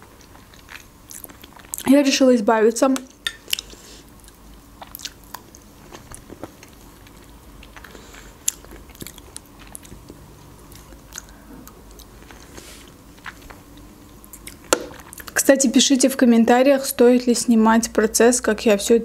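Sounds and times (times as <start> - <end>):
person biting and chewing: 3.5 - 15.4.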